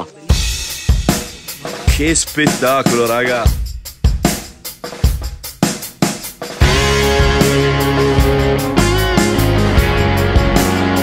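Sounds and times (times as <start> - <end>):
drum kit beat: 0.3 - 11.0.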